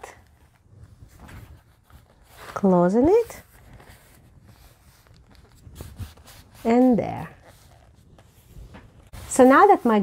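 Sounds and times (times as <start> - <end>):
paper rustling: 0.1 - 10.0.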